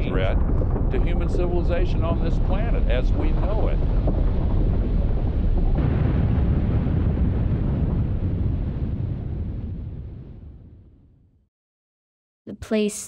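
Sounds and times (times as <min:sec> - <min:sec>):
deep steady rumbling: 0:00.0 - 0:11.2.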